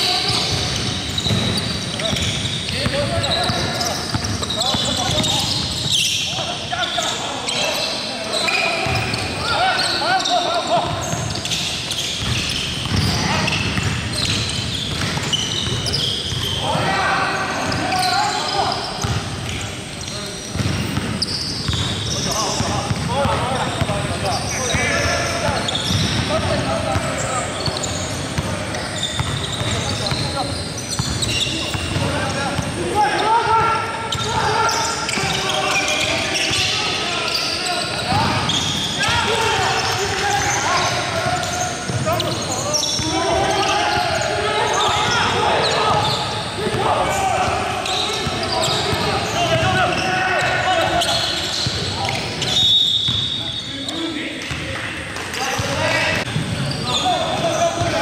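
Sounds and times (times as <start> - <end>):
basketball bouncing on hardwood floor: 14.9 - 16.4.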